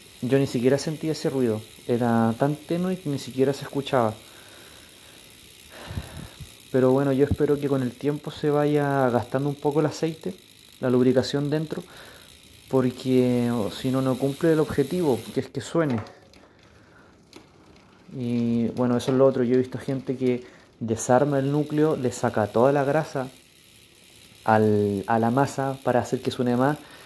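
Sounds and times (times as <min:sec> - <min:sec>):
bicycle freehub ratcheting buzz: 0:00.0 - 0:27.0.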